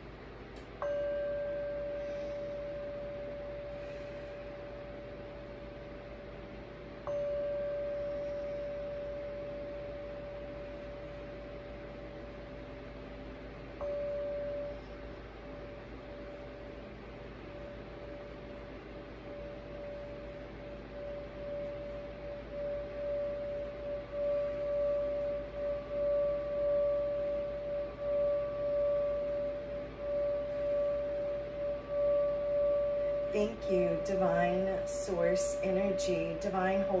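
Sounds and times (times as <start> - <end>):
singing bowl struck with mallet: 0.8 - 3.7, 13.8 - 14.9.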